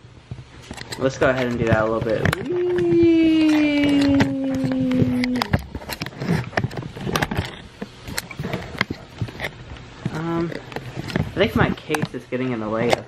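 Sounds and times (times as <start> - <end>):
person humming a falling note: 2.4 - 5.6.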